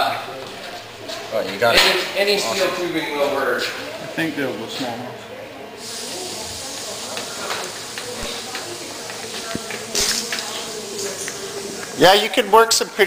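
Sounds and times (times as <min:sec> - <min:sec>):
gas torch hissing: 0:05.8 - 0:12.2.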